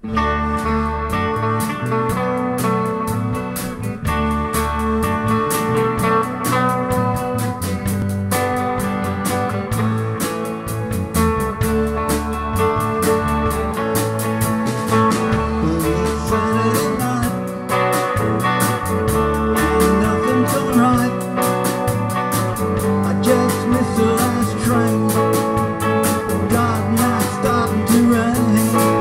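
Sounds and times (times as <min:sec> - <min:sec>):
bass guitar: 0:00.0 - 0:29.0
electric lead guitar: 0:00.0 - 0:29.0
electric rhythm guitar: 0:00.0 - 0:29.0
drum kit beat: 0:00.1 - 0:29.0.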